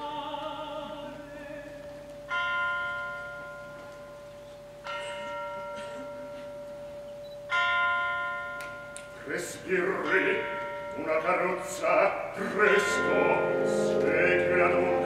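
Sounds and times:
tubular bells ringing: 2.2 - 15.0
held orchestral note: 12.5 - 15.0.

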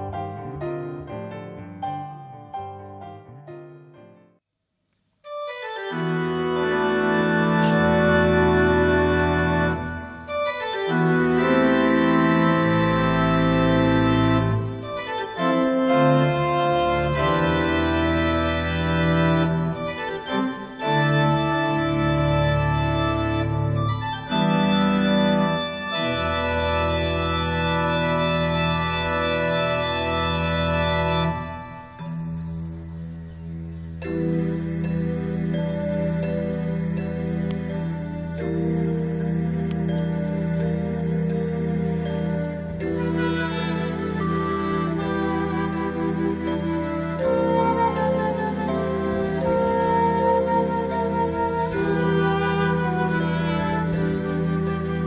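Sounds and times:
electronic keyboard organ chords: 5.2 - 55.0.

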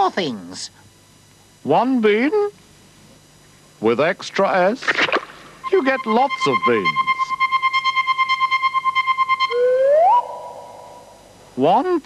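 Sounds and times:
upward gliding tone: 5.6 - 11.0
pulsing synthesized tone: 5.6 - 11.3.

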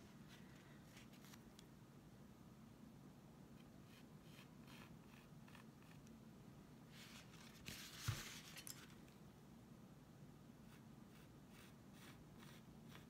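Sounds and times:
scratchy handling sounds: 6.9 - 9.2.

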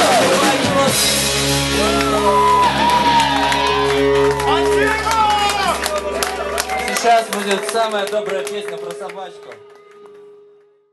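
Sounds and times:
audience shouting and cheering: 0.0 - 8.6
rock band holding a chord: 0.0 - 10.4.

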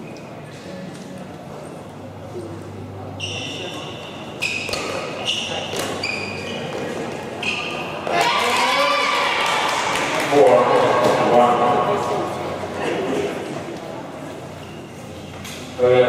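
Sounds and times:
sneakers squeaking on court: 3.2 - 8.2
rackets hitting shuttlecock: 4.5 - 8.7
crowd shouting and cheering: 7.8 - 13.4.

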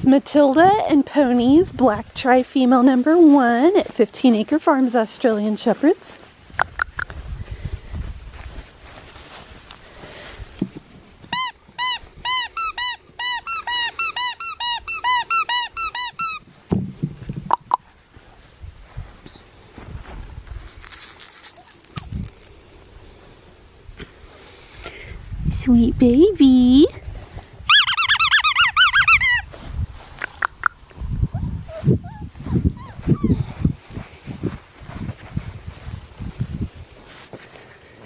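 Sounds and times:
squeaky dog toy squeaking: 11.3 - 16.4, 27.7 - 29.5.

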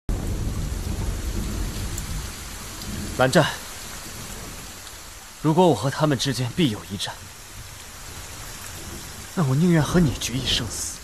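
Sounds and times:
heavy rain falling: 0.1 - 11.0.

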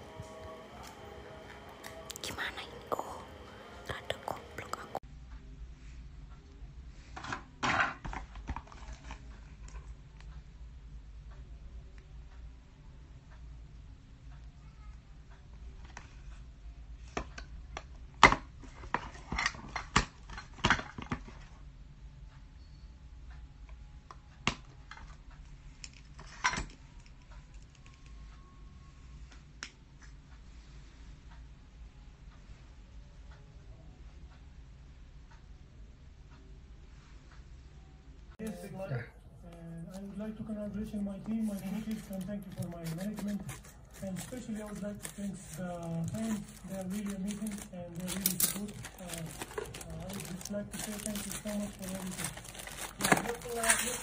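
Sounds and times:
cable and packaging rustling: 8.1 - 9.7, 40.9 - 54.0.

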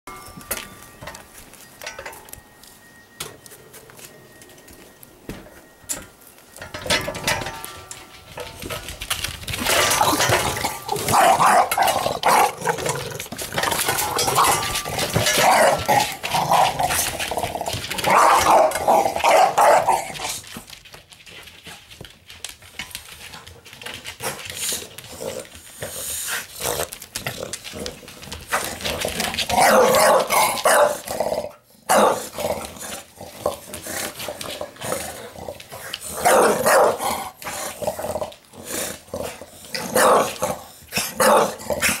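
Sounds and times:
dog growling: 28.8 - 42.0.

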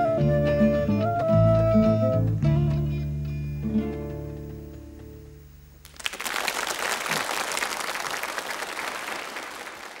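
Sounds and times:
audience applause: 5.8 - 10.0.

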